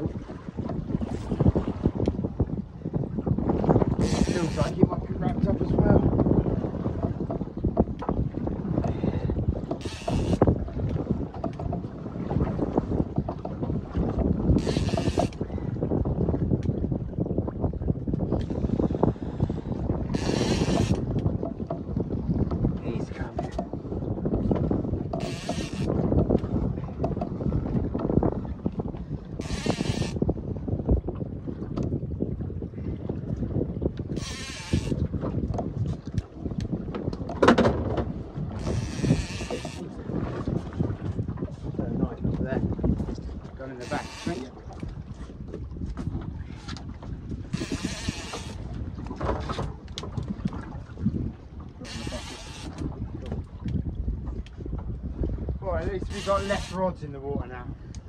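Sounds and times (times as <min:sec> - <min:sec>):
sea noise: 0:00.0 - 0:17.2, 0:18.0 - 0:30.7, 0:32.7 - 0:41.4, 0:42.1 - 0:53.8, 0:55.2 - 0:57.8
wind on microphone: 0:00.0 - 0:58.0
fishing reel high-pitched bursts: 0:09.8 - 0:10.4, 0:25.2 - 0:25.9, 0:29.4 - 0:30.2, 0:34.2 - 0:34.9, 0:43.9 - 0:44.4, 0:51.9 - 0:52.7.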